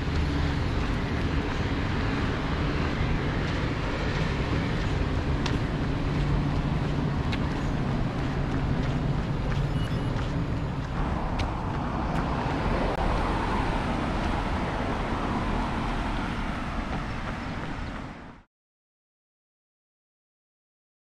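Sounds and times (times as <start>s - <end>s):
traffic noise rumble: 0.0s - 18.5s.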